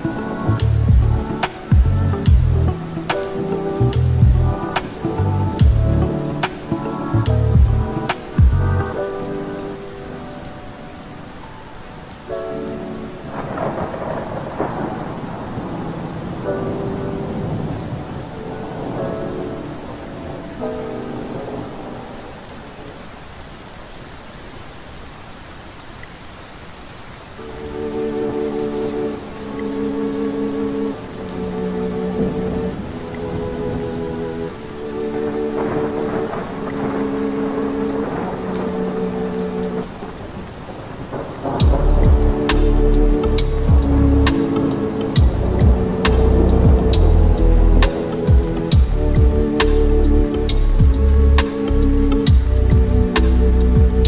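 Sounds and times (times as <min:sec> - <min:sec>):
thunder rolling: 0:00.0 - 0:10.8, 0:12.3 - 0:22.6, 0:31.0 - 0:54.0
soft lo-fi chords: 0:00.0 - 0:23.8, 0:27.2 - 0:54.0
steady rain: 0:00.0 - 0:54.0.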